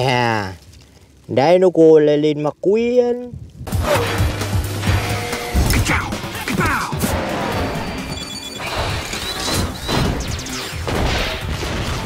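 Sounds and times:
film soundtrack music: 3.6s - 12.0s
crash sound effects: 6.9s - 12.0s.

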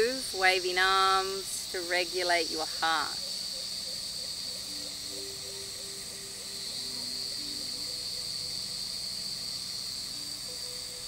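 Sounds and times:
insects chorus: 0.0s - 11.0s.

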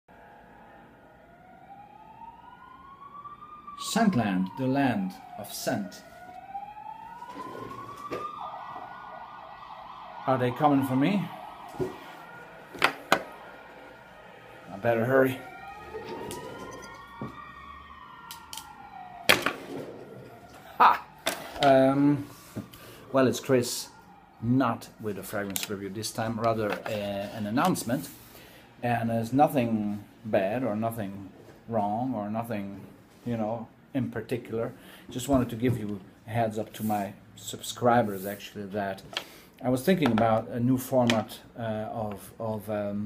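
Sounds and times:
siren wailing: 0.1s - 32.1s.

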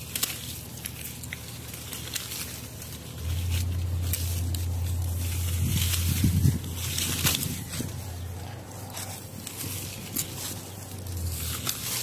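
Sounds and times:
leaves and branches rustling: 0.0s - 12.0s
steady low hum: 0.0s - 12.0s.

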